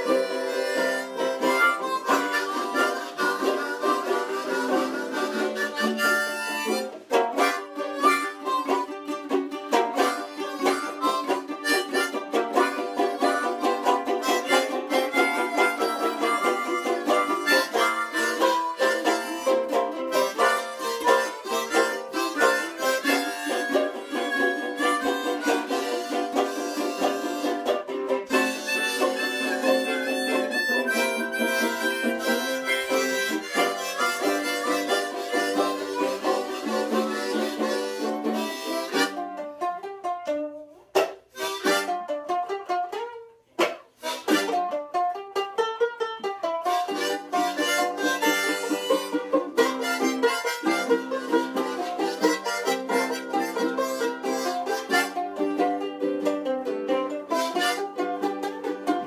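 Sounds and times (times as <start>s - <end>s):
harmonicas playing blues: 0.0s - 59.0s
strummed ukulele and banjolele: 0.0s - 59.0s.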